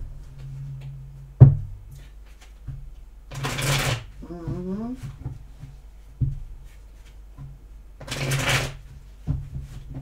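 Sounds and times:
rapid card riffling: 8.0 - 8.8
cards being shuffled: 8.0 - 8.9.

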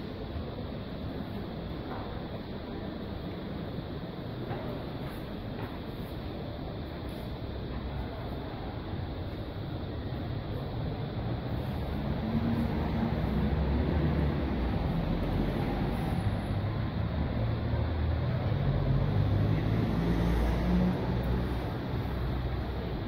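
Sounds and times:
traffic rumble: 0.0 - 23.0.

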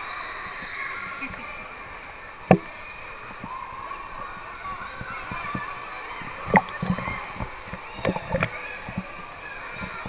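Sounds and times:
indoor swimming pool din: 0.0 - 10.0
pool water sloshing and splashing: 0.0 - 10.0.

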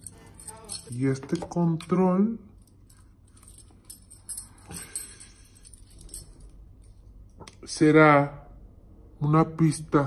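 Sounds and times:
keys jingling: 0.0 - 7.4.

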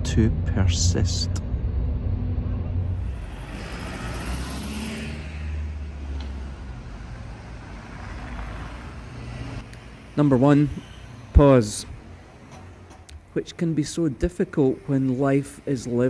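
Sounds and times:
bus engine passing: 0.0 - 13.4
hiss of traffic: 3.0 - 13.5.

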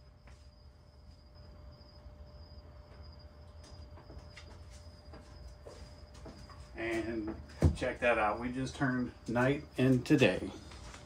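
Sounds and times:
crickets trilling: 0.0 - 11.0.

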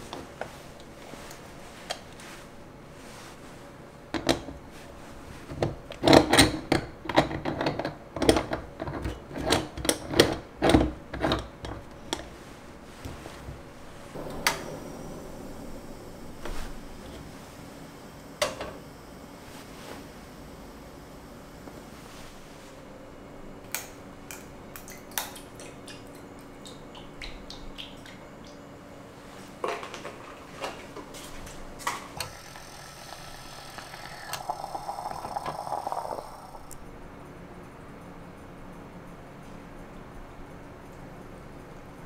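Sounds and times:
moka pot sputtering and gurgling: 32.2 - 36.8.

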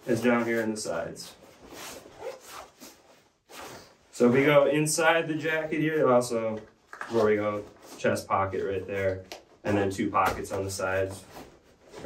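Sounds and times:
fabric rustling with zipper: 0.0 - 4.6.

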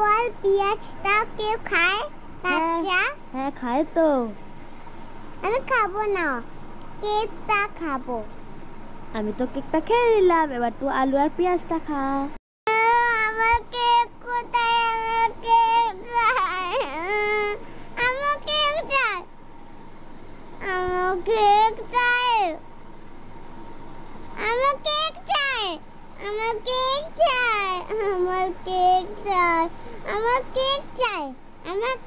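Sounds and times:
young girl crying: 12.7 - 13.3, 15.8 - 17.6.

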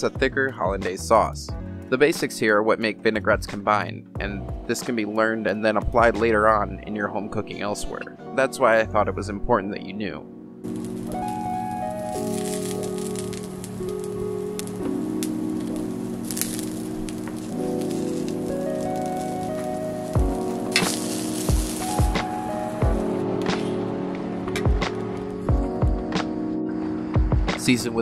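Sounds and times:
low drum beat: 0.2 - 0.9, 4.2 - 4.8, 5.8 - 6.4, 18.9 - 23.8, 24.5 - 26.2, 27.2 - 27.7
music of sustained chords: 4.2 - 28.0
food sizzling on grill pan: 10.7 - 23.2.

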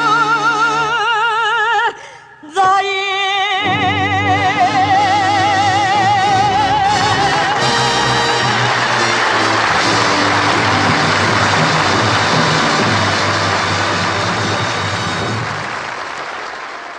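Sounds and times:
audience applauding: 6.9 - 16.9
orchestra holding final chord: 7.0 - 16.1.

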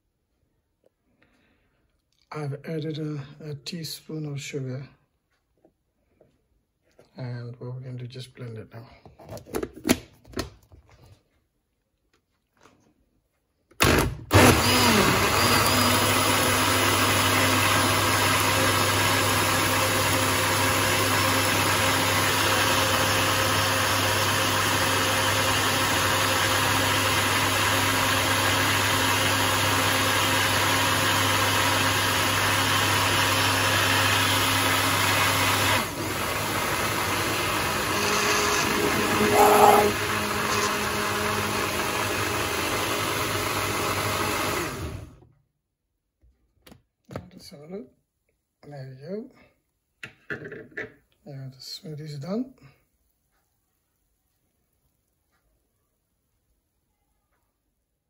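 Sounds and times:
blender running: 13.8 - 45.2.

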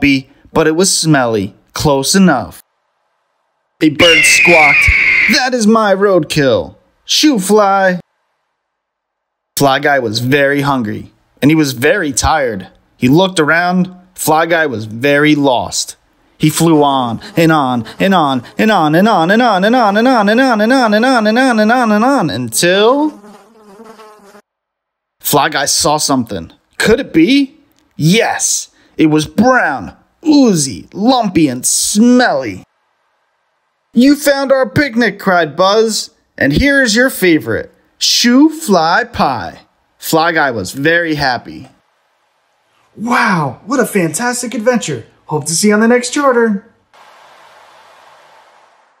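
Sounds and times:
steady hiss: 46.9 - 49.0.

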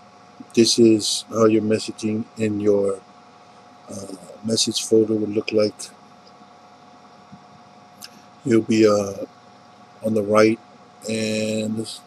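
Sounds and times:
faint room hum and hiss: 0.0 - 12.0.

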